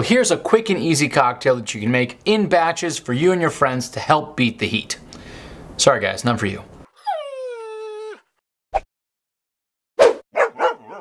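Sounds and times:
dog whining: 6.8 - 8.4, 10.4 - 11.0.

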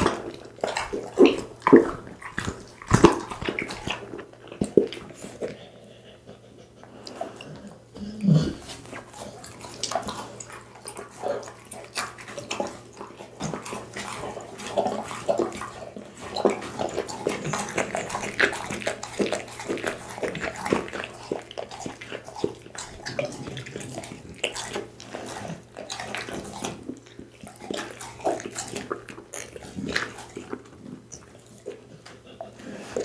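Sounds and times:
dog chewing and licking: 0.0 - 33.0.

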